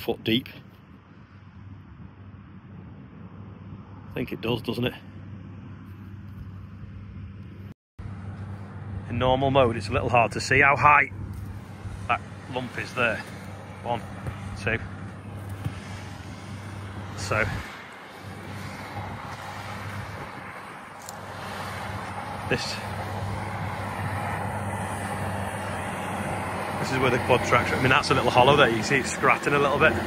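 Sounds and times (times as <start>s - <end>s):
distant tractor engine drone: 0.0s - 30.0s
outdoor noise: 0.0s - 30.0s.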